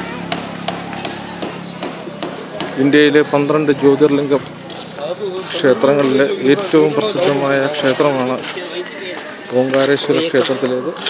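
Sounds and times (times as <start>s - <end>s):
sharp taps: 0.2s - 3.0s
man talking: 2.6s - 11.0s.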